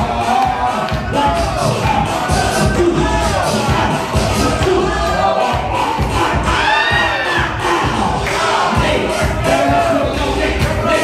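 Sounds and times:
crowd cheering and shouting: 0.0 - 11.0
dance music with steady beat: 0.0 - 11.0.

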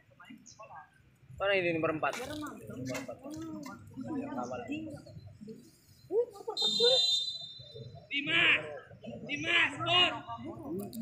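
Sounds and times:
voices calling out: 2.4 - 11.0.

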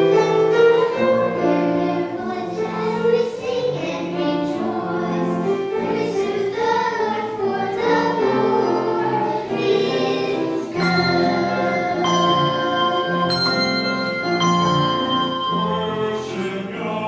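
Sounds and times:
choir singing: 0.0 - 17.0.

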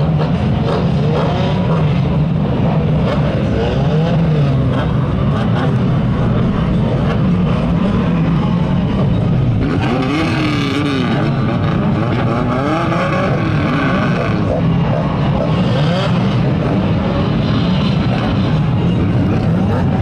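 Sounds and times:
nearer engine revving: 0.0 - 20.0
racing car engines: 0.0 - 20.0.

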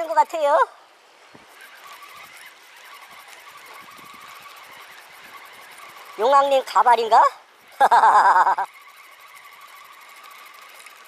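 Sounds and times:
fishing reel ticking: 0.0 - 0.7, 1.4 - 11.0.

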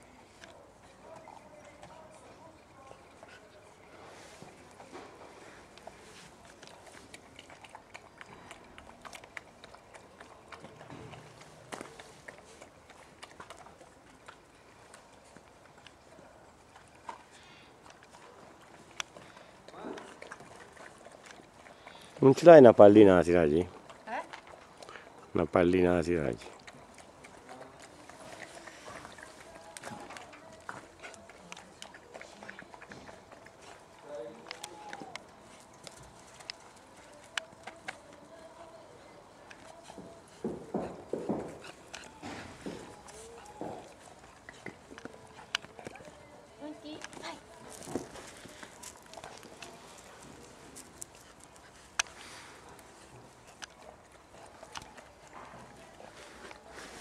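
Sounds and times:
puppy lapping from metal pail: 6.4 - 23.0, 23.6 - 38.3, 39.4 - 46.3.

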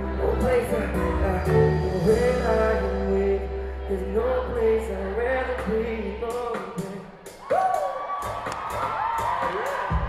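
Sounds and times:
crowd screaming and cheering: 0.0 - 10.0.

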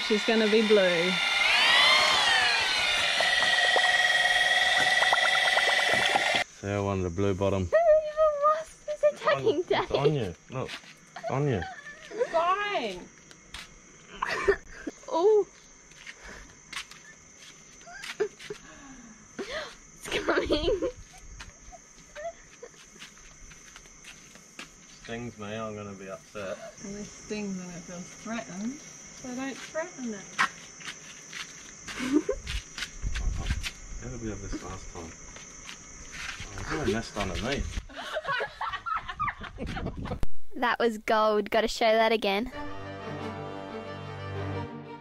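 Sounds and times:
electric drill motor whine: 0.0 - 6.5
high-pitched insect drone: 0.0 - 39.1
short rising chirp: 0.9 - 6.4.

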